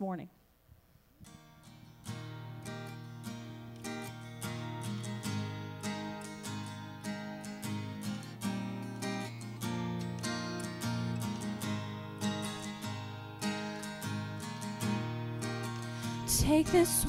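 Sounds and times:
acoustic guitar strumming: 1.2 - 17.0.

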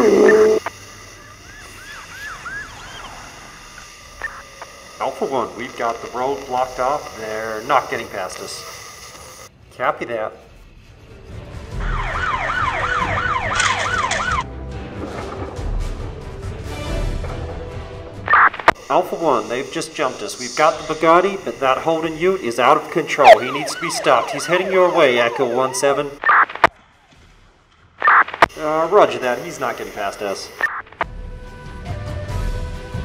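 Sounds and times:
police siren yelp: 0.0 - 3.6, 11.8 - 14.4, 19.2 - 26.7
two-way radio chirp: 0.0 - 9.5, 12.3 - 14.4, 18.2 - 26.7, 28.0 - 31.1
radio click: 4.2 - 9.4, 18.3 - 18.8, 20.6 - 26.7, 28.0 - 28.6, 29.8 - 31.1.

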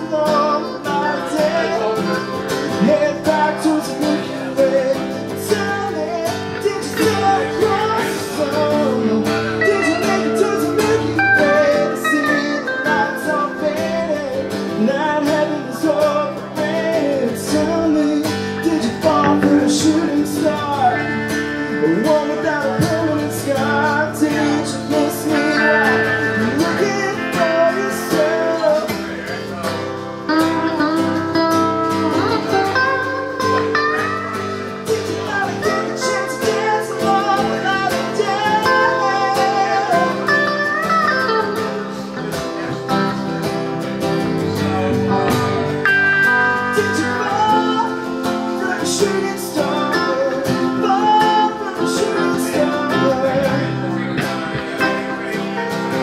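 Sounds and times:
acoustic guitar strumming: 0.0 - 56.0
electric guitar lead line: 0.0 - 56.0.

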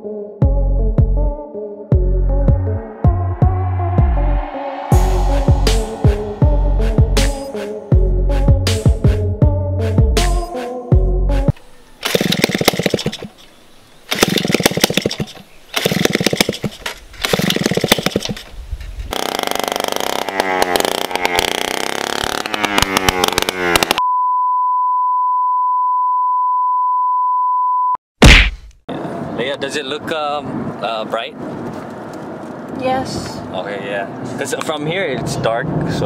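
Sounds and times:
small engine revving: 12.0 - 13.2, 14.1 - 18.4, 19.1 - 24.0
steady high beep: 24.0 - 28.0.

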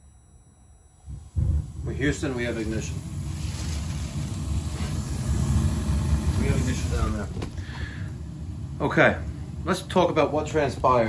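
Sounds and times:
gas boiler burner rumbling: 1.0 - 11.0.

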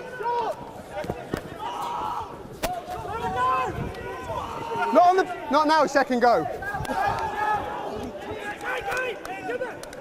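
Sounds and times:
players shouting calls: 0.0 - 10.0.

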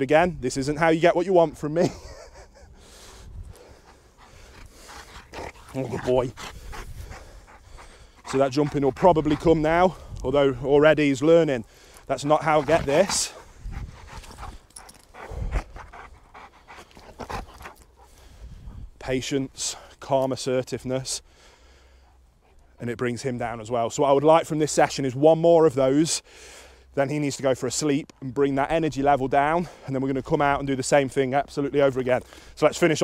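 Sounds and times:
dog panting: 1.9 - 19.0, 21.2 - 23.0.

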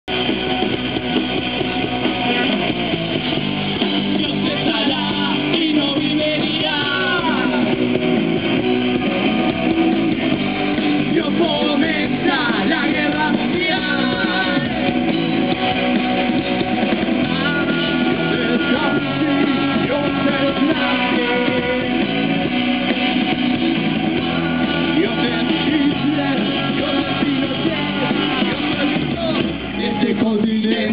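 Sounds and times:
rock band playing live: 0.0 - 30.9
electric guitars: 0.1 - 30.9
person singing: 4.0 - 7.8, 11.0 - 14.9, 17.2 - 22.3, 24.3 - 30.9.

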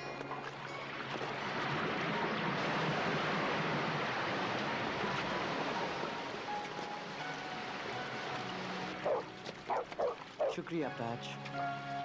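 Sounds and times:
rushing water: 0.0 - 12.0.

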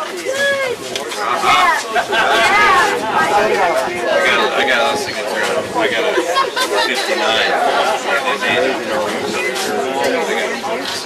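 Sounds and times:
indistinct background chatter: 0.0 - 11.0.

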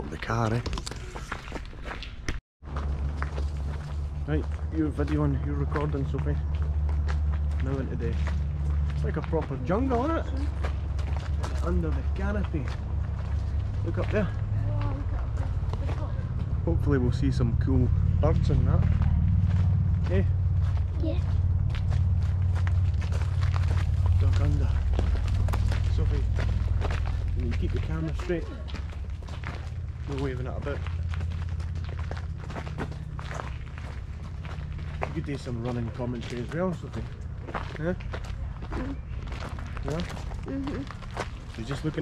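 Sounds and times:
footsteps on gravel: 0.0 - 16.6, 18.8 - 42.0
low rumble on microphone: 2.7 - 42.0.

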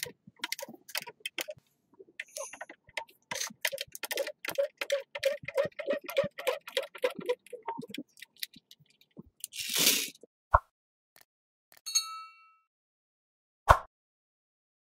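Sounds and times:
short hiss: 9.6 - 10.2.

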